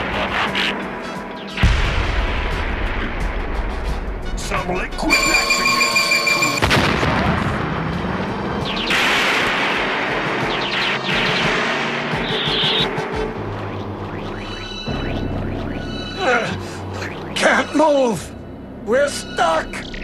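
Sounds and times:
background music: 0.0 - 20.0
steady electronic tone: 5.1 - 6.6.

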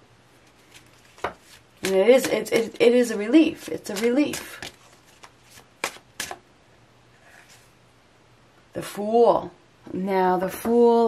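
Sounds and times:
cards being shuffled: 0.4 - 6.4.

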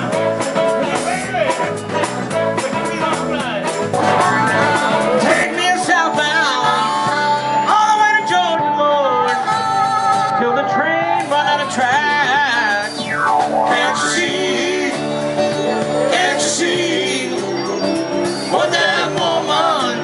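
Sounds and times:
blues harmonica lead: 0.0 - 20.0
electric guitar accompaniment: 0.0 - 20.0.

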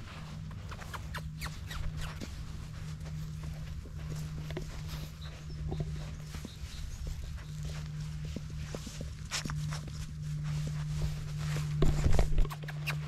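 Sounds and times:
steady low hum: 0.0 - 13.0
soft rustles and taps: 1.8 - 13.0.

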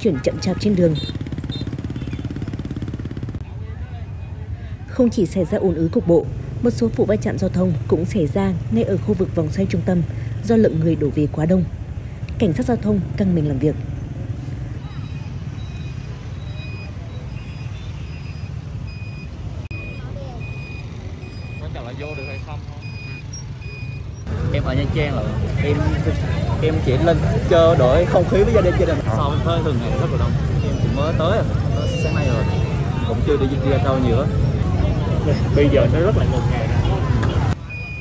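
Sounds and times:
motorbike engine running: 0.0 - 3.6
traffic engines rumbling: 0.0 - 38.0
crowd noise: 14.7 - 18.4, 19.4 - 38.0
vehicle warning beeper: 14.8 - 24.3, 37.5 - 38.0.

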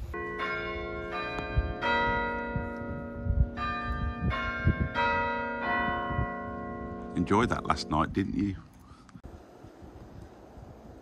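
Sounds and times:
church bells ringing: 0.0 - 8.4.

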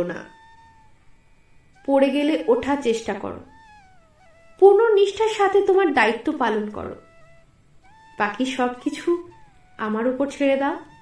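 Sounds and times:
woman speaking: 0.0 - 0.4, 1.8 - 3.5, 4.6 - 7.0, 8.2 - 11.0
faint high wavering tone: 0.0 - 11.0.

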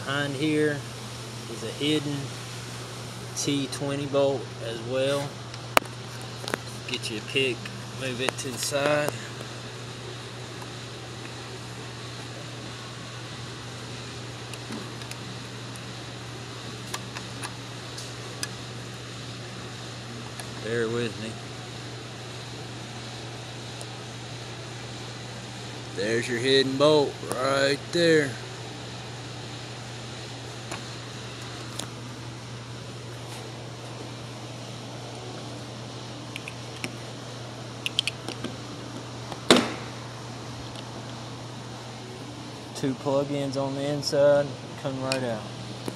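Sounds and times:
low mechanical hum: 0.0 - 45.9.

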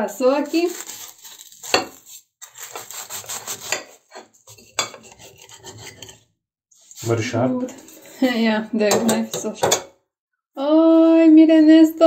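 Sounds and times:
knife sawing through crisp crust: 0.2 - 7.2.

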